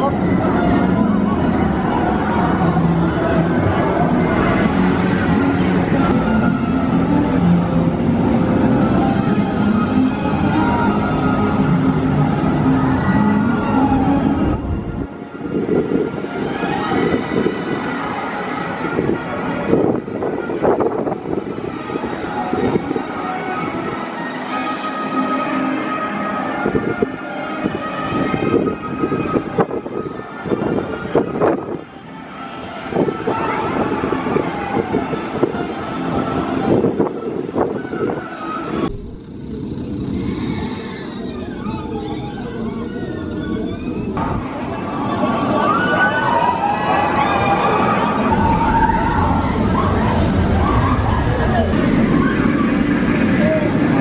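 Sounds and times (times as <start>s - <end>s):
roller coaster rolling roar: 0.0s - 54.0s.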